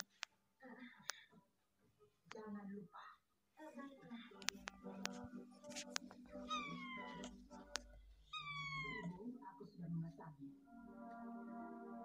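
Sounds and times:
cat meowing: 6.3s - 7.4s, 8.2s - 9.2s.

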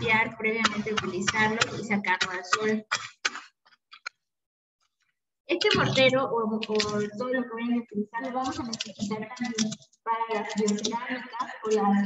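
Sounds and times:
stone pestle tapping mortar: 0.0s - 3.4s.

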